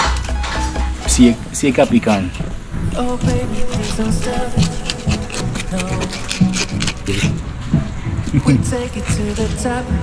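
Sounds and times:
background music: 0:00.0 - 0:10.0
fish scaler scraping scales: 0:01.8 - 0:07.6.

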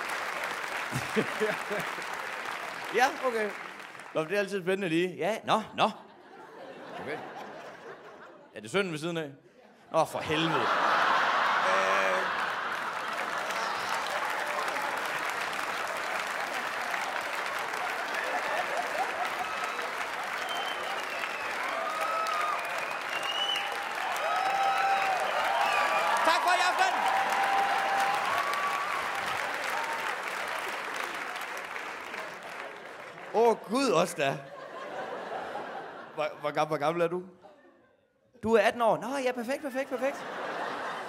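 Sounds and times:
audience applauding: 0:00.0 - 0:04.7, 0:10.2 - 0:36.1
people laughing: 0:00.9 - 0:02.4, 0:05.8 - 0:08.6, 0:09.5 - 0:15.1, 0:16.0 - 0:20.4, 0:32.1 - 0:36.6, 0:39.6 - 0:41.0.

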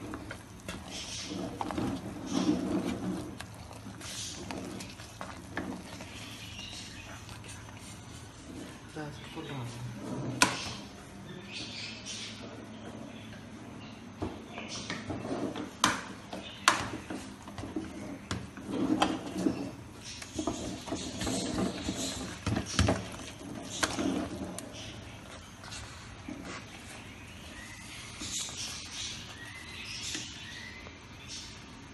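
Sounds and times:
ladle scraping through rice: 0:00.0 - 0:09.3, 0:17.0 - 0:30.7.

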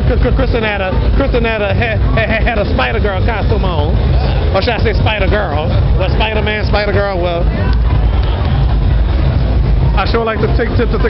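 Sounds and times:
low rumble with hiss: 0:00.0 - 0:11.0.

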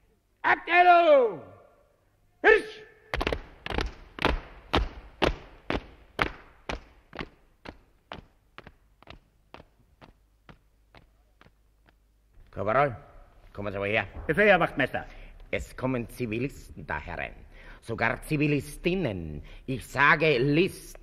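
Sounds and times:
boots marching in step: 0:03.1 - 0:12.6.

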